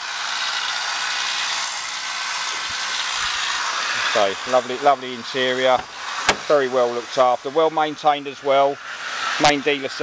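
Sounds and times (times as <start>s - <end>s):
steady hissing noise: 0.0s - 10.0s.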